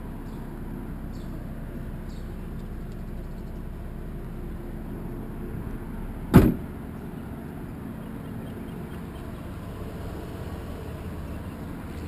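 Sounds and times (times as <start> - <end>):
car trunk lid thud: 6.3 - 6.8.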